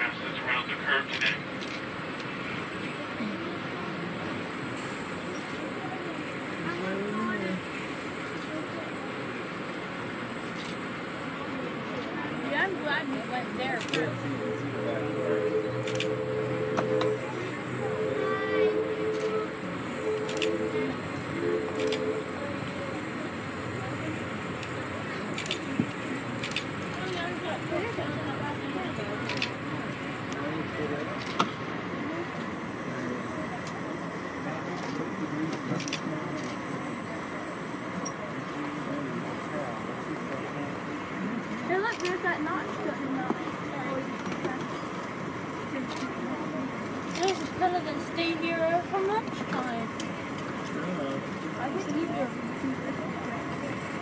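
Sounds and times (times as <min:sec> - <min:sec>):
train car rumbling on rails: 0:01.1 - 0:54.0
train horn chord: 0:14.2 - 0:23.3.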